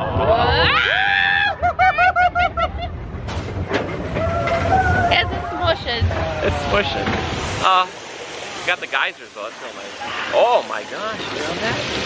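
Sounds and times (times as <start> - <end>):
roller coaster rumbling on track: 0.0 - 12.0
roller coaster clanks: 1.7 - 12.0.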